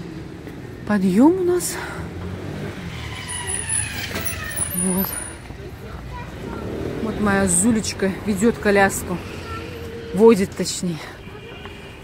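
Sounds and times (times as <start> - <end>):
street traffic: 0.0 - 12.0.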